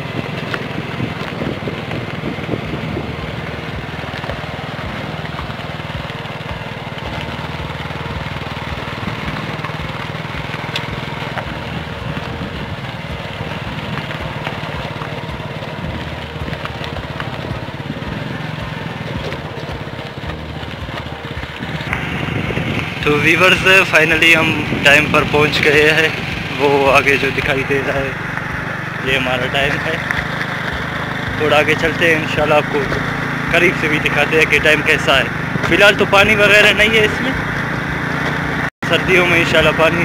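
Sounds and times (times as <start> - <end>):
vehicle engine on gravel track: 0.0 - 40.0.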